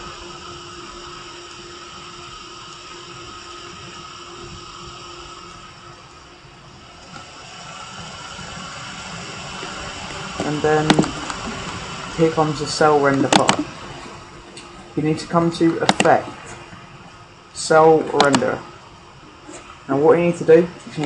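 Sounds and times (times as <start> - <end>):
computer fans humming: 0.0 - 21.0.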